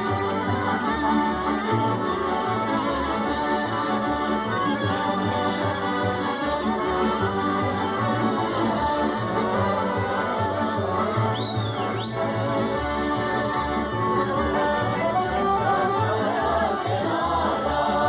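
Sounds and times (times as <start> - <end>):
folk dance music from small band: 0.0 - 18.0.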